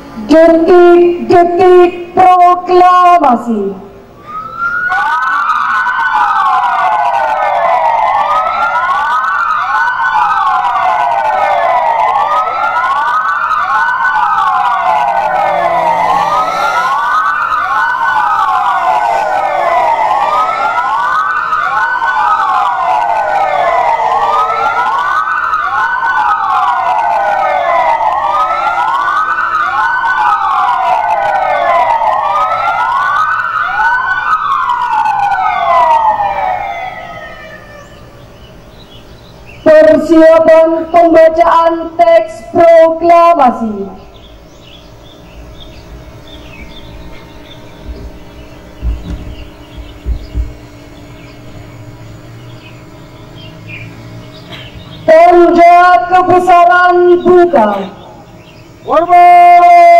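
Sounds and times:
wailing sirens: 0.0 - 59.9.

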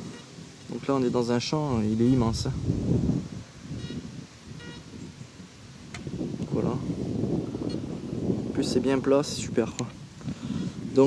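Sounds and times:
low wind rumble: 0.0 - 11.0
faint electronic beep: 3.8 - 4.0, 4.6 - 4.9.

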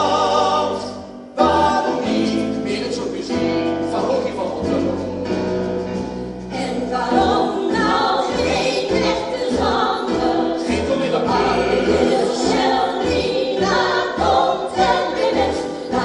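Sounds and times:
group of voices singing: 0.0 - 5.5, 6.5 - 16.0.

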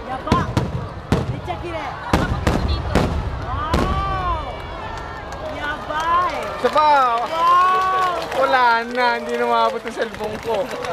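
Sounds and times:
firework shells booming overhead: 0.0 - 6.7.

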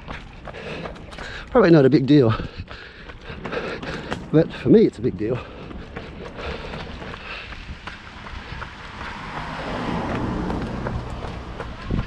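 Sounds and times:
wind buffeting microphone: 0.0 - 12.0
car passing: 3.2 - 12.0.

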